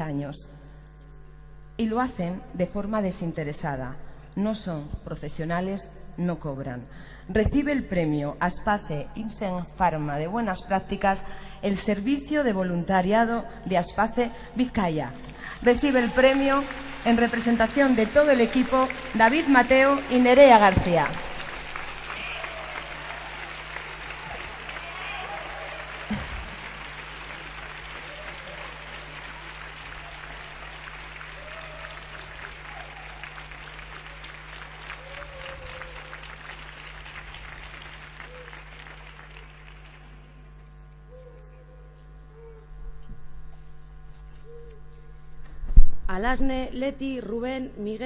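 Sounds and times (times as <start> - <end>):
low electrical hum: 0.0 - 48.0
audience applauding: 15.5 - 40.3.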